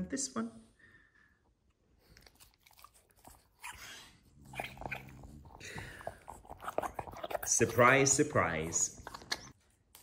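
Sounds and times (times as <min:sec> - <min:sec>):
teeth crunching on rubber: 0:02.1 - 0:07.8.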